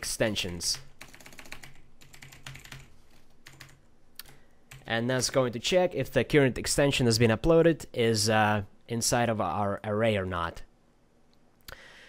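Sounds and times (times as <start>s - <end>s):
computer keyboard typing: 0.4s - 4.9s.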